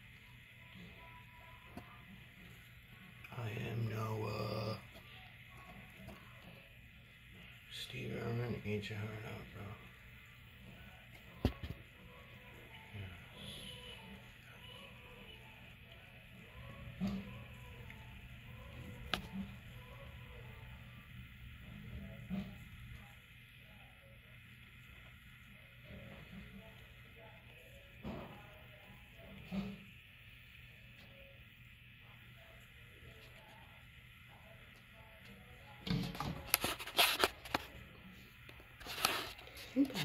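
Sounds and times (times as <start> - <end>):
crackly rustling and handling noise: 32.0 - 40.0.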